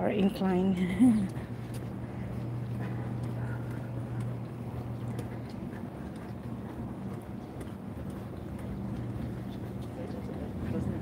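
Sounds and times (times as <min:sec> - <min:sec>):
steady low hum: 0:00.0 - 0:11.0
footsteps on concrete: 0:00.9 - 0:11.0.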